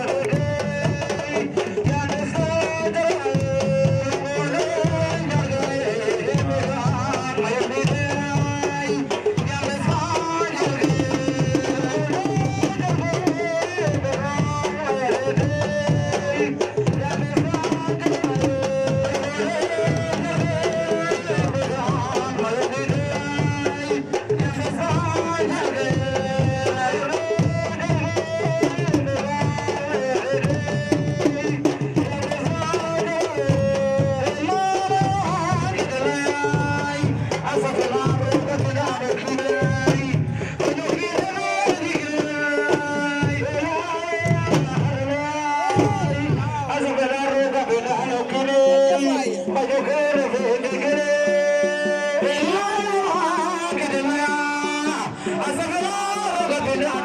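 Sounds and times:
steady drumming: 0:00.0 - 0:57.0.

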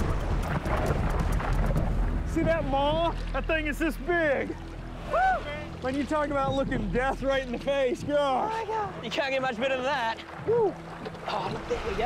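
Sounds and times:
water splashing and churning: 0:00.0 - 0:12.0.

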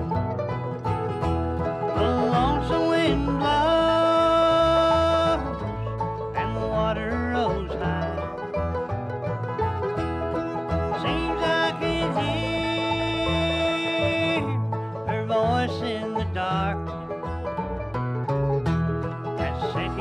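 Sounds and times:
bluegrass band playing slow song: 0:00.0 - 0:20.0.

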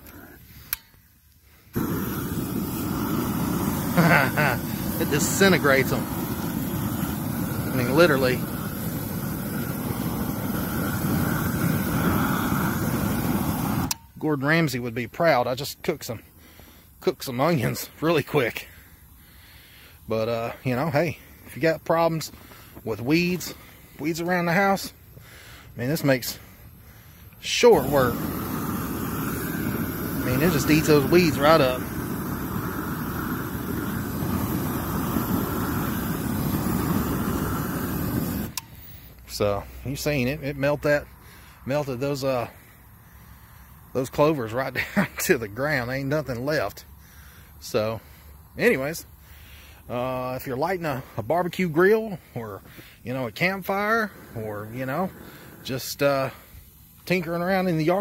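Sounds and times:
propane torch flame rushing: 0:00.0 - 0:58.0.

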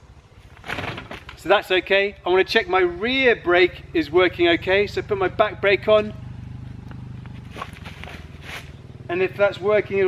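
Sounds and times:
bicycle knocks and rustles: 0:00.4 - 0:01.5, 0:06.8 - 0:08.7
low motor hum: 0:03.4 - 0:10.0.

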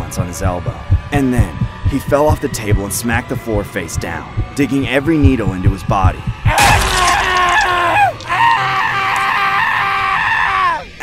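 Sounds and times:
person screaming in pain: 0:06.5 - 0:10.8.

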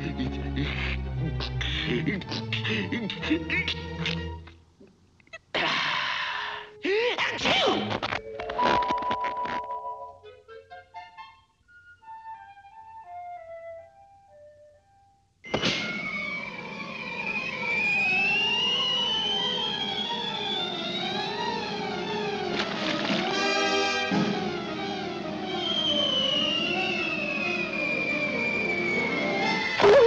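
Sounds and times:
rising whistle: 0:15.8 - 0:21.6, 0:25.4 - 0:30.0
soft descending notes: 0:15.8 - 0:22.3
busy orchestral music: 0:20.2 - 0:25.7.

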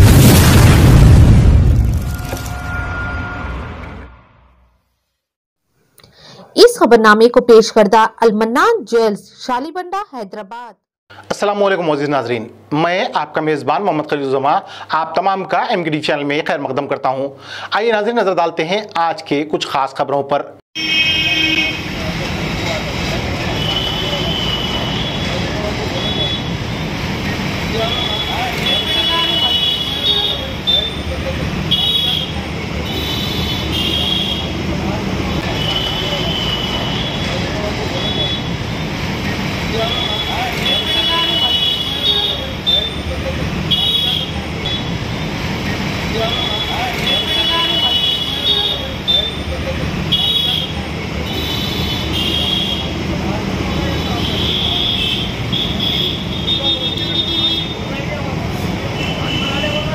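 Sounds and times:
vehicle horns tooting: 0:02.1 - 0:04.2, 0:20.8 - 0:22.0, 0:23.4 - 0:26.6, 0:27.8 - 0:34.6, 0:35.4 - 0:38.6, 0:39.8 - 0:43.1, 0:43.7 - 0:45.0, 0:46.2 - 0:53.0, 0:53.8 - 0:57.9, 0:58.9 - 0:59.9
hum of passing traffic: 0:21.8 - 0:31.7, 0:32.3 - 0:59.9.

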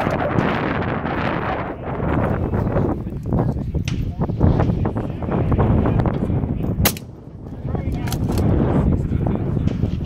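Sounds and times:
rifle shot: 0:06.8 - 0:07.2.

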